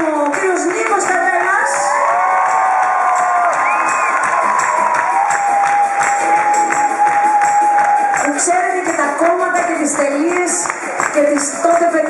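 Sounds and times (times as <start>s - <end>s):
crowd cheering: 0.8s - 9.2s.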